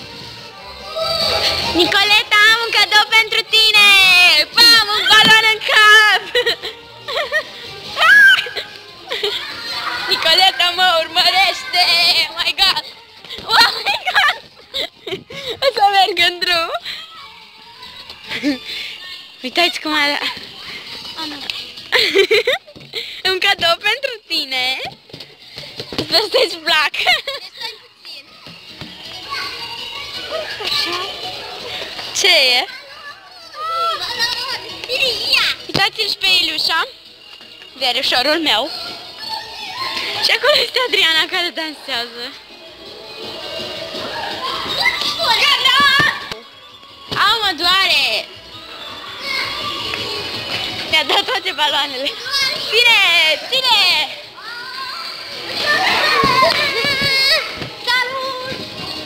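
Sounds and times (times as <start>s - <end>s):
background music: 0.0s - 59.0s
children calling and shouting: 0.0s - 59.0s.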